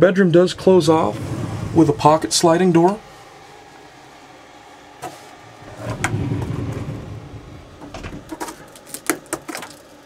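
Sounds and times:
sliding door rolling on track: 0.0s - 8.7s.

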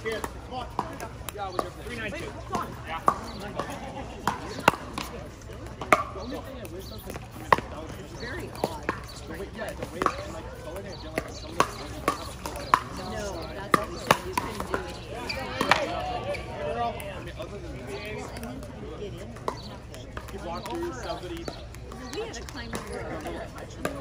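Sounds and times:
paddles popping balls: 0.0s - 16.0s
murmur of voices: 0.0s - 24.0s.

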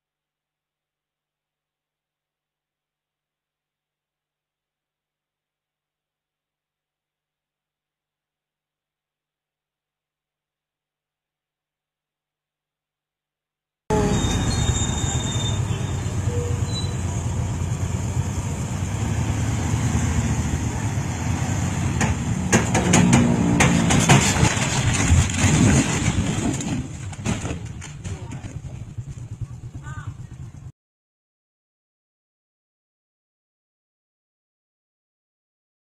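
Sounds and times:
engine and road rumble: 13.9s - 30.7s
sharp knocks: 21.9s - 26.0s.

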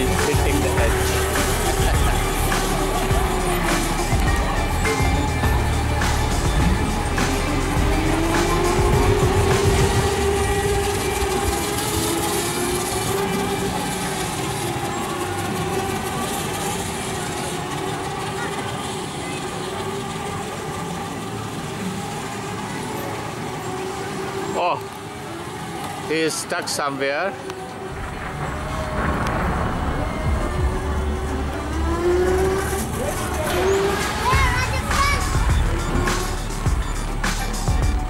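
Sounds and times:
vehicle motor whining: 0.0s - 38.0s
low rumble: 27.7s - 38.0s.

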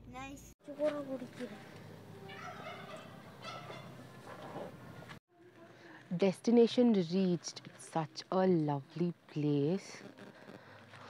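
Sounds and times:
fowl calling: 2.3s - 4.0s.

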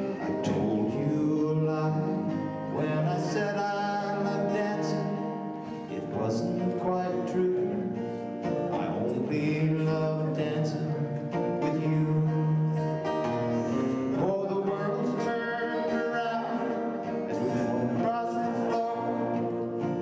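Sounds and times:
acoustic guitars strumming: 0.0s - 20.0s
person singing: 0.0s - 20.0s.

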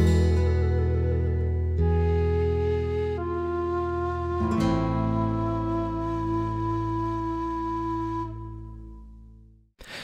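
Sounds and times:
steady bass: 0.0s - 4.4s
bamboo flute held notes: 0.3s - 9.0s.

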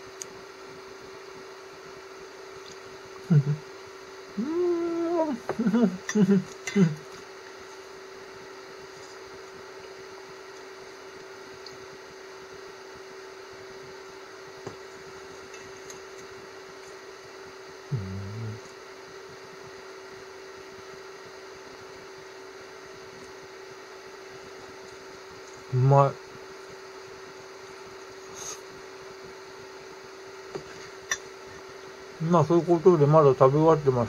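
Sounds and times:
low background hum: 0.0s - 34.0s
person humming while eating: 3.2s - 3.7s, 4.3s - 7.1s, 17.8s - 18.8s.

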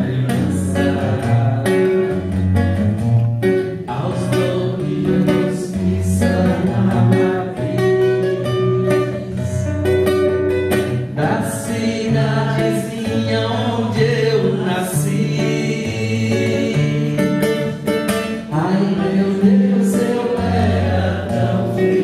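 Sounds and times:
man singing: 0.0s - 2.4s, 3.6s - 9.9s, 11.0s - 22.0s
acoustic guitar strumming: 0.0s - 22.0s.

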